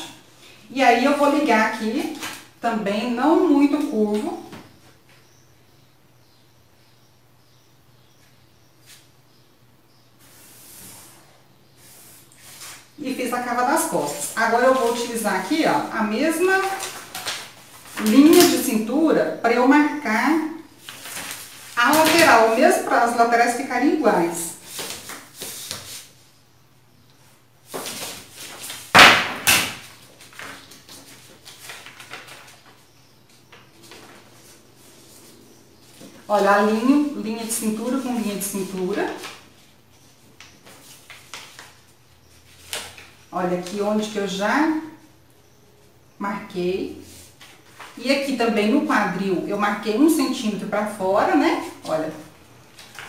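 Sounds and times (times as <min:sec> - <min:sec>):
paper rustling on a table: 0:14.1 - 0:18.8, 0:20.8 - 0:22.6, 0:24.6 - 0:26.2, 0:27.7 - 0:36.8, 0:38.2 - 0:43.8, 0:47.0 - 0:48.0, 0:51.6 - 0:53.0
sharp paper slap: 0:27.7 - 0:32.6.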